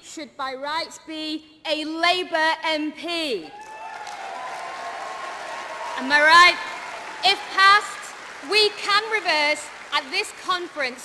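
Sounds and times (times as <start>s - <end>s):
large audience applauding: 3.5s - 11.0s.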